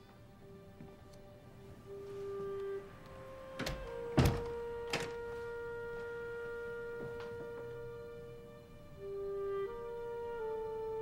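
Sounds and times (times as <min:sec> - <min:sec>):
thuds at a wooden door: 0:03.7 - 0:04.6.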